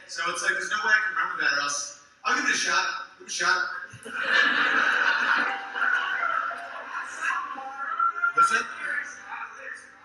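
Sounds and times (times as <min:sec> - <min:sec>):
audience laughing: 0:04.0 - 0:07.6.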